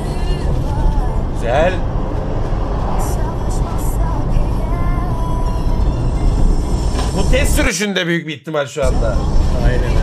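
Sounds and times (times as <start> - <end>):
music playing: 0.0 - 1.8, 3.0 - 7.8, 8.8 - 10.0
car engine and road rumble: 0.0 - 7.7, 8.8 - 10.0.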